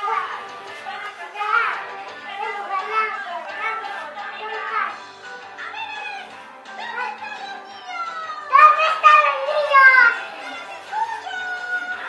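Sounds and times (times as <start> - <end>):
background music: 0.0 - 12.0
young girl talking: 8.3 - 10.2.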